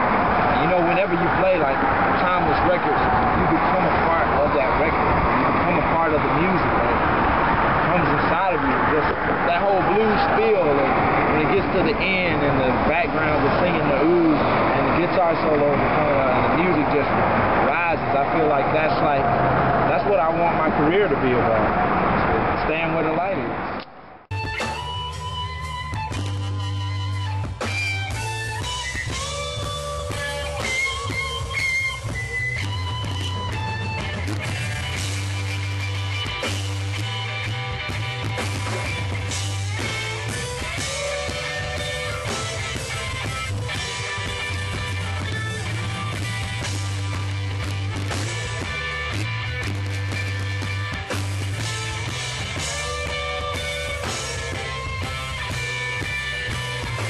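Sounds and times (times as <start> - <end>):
bass line: 0.0 - 57.0
city street traffic noise: 0.0 - 57.0
man talking: 0.6 - 7.0, 7.8 - 23.6
electric guitar lead notes: 24.3 - 57.0.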